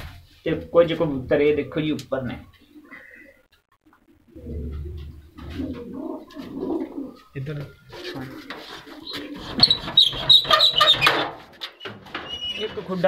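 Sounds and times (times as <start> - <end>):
pigeons cooing: 2.5 - 11.1.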